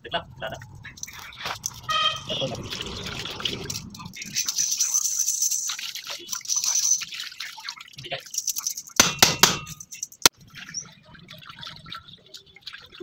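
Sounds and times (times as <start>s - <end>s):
oily liquid splashing and dripping: 0.4s - 13.0s.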